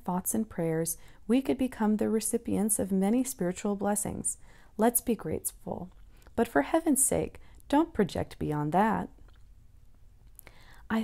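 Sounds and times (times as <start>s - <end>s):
person reading aloud: 0.0s - 9.2s
low room hiss: 0.0s - 11.0s
short breath: 4.4s - 4.8s, 10.4s - 10.9s.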